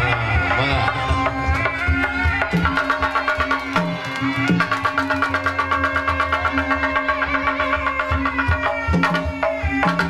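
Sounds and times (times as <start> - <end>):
hand drums fast beat: 0.0 - 10.0.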